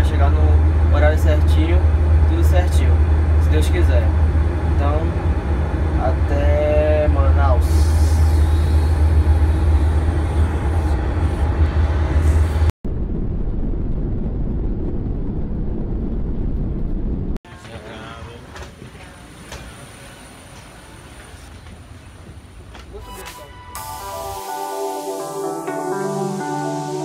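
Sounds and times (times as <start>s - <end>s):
background hum with high whine: 0.0s - 10.9s
deep aircraft cabin rumble: 0.0s - 22.8s
duller rumble: 0.0s - 22.9s.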